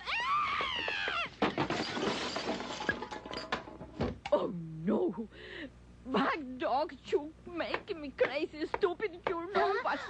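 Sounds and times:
glass shattering: 1.5 - 3.9
glass pieces clinking: 1.6 - 3.8.

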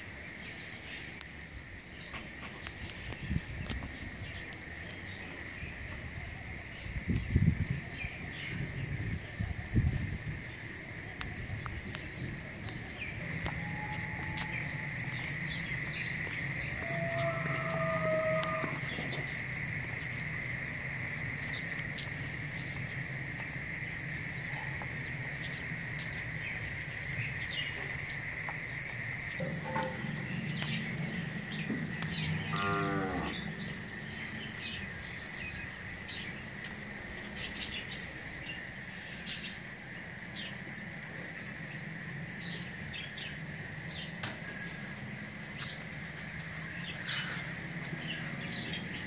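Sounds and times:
farm animal calling: 16.7 - 19.0, 29.4 - 33.6
cow mooing: 16.8 - 18.9, 32.2 - 33.6
small birds chirping: 21.1 - 40.6, 45.5 - 49.0.

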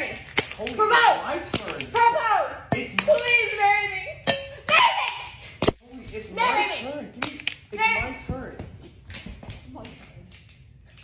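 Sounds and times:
man and woman talking excitedly: 0.0 - 9.0.

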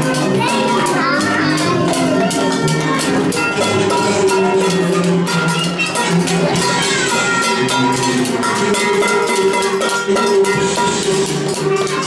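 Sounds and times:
kitchen utensils clanking: 0.0 - 12.0
music with a steady beat: 0.0 - 12.0.

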